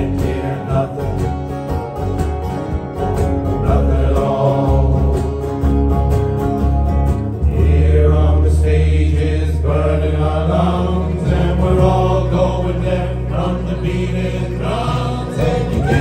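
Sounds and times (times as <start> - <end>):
men singing together: 0.0 - 1.6, 3.5 - 5.6, 7.4 - 16.0
acoustic guitars playing: 0.0 - 16.0
low bass notes: 0.0 - 16.0.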